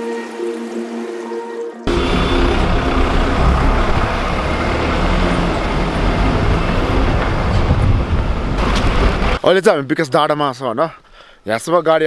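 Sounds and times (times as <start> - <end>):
vehicle engine and road rumble: 1.9 - 9.4.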